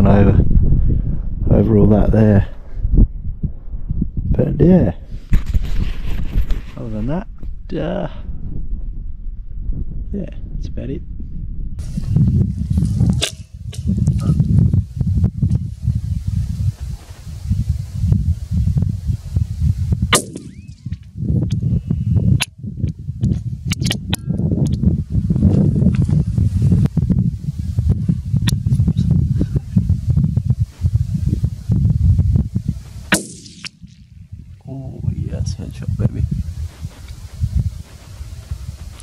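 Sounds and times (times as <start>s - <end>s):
wind buffeting microphone: 0.0s - 39.0s
sharp clicks and knocks: 22.4s - 24.8s.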